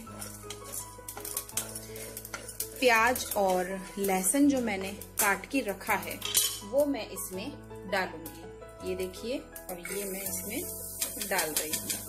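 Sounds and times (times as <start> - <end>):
wooden spatula scraping pan: 0.0 - 4.9
background music sustained notes: 0.0 - 12.0
spices crackling: 0.0 - 12.0.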